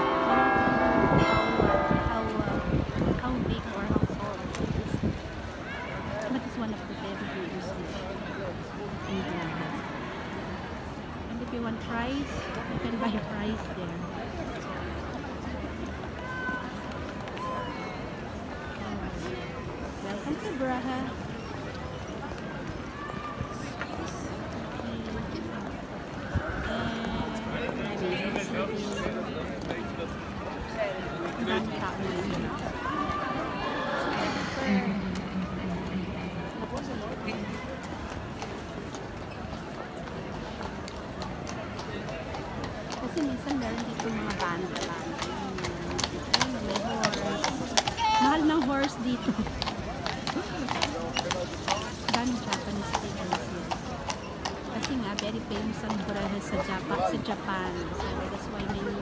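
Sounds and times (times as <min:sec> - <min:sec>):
crowd babble: 0:00.0 - 0:59.0
horse hooves clip-clopping on cobblestones: 0:00.0 - 0:59.0.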